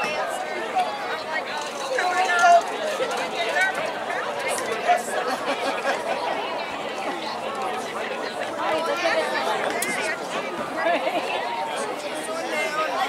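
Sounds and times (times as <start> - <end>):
crowd chatting: 0.0 - 13.0.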